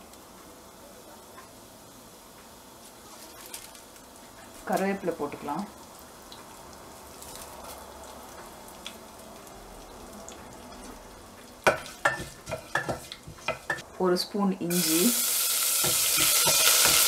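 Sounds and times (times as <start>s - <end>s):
seeds sizzling in hot fat: 0.0s - 17.0s
stirring with sharp crackles and knocks: 2.3s - 13.9s, 15.8s - 17.0s.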